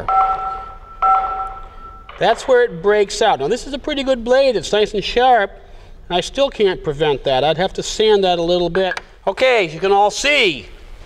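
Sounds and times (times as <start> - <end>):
bell-like chime: 0.0 - 2.2.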